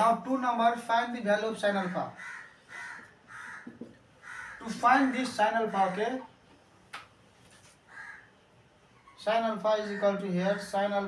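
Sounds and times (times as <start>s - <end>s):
bird calling: 2.2s - 6.1s
faint taps: 3.6s - 4.0s.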